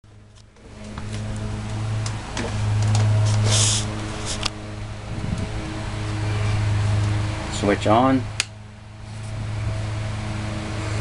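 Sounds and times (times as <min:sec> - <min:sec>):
lawn mower engine running: 0:00.1 - 0:11.0.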